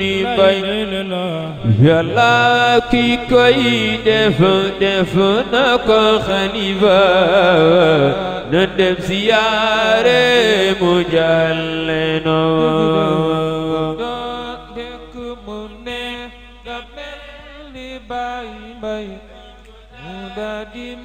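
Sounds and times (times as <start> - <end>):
man chanting a religious song: 0.0 - 21.0.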